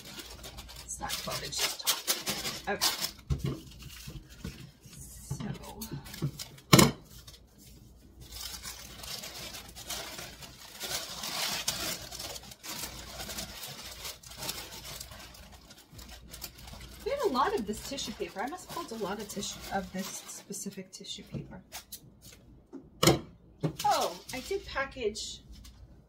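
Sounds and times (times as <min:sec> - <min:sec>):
tissue paper rustling: 0:00.0 - 0:20.8, 0:23.7 - 0:25.8.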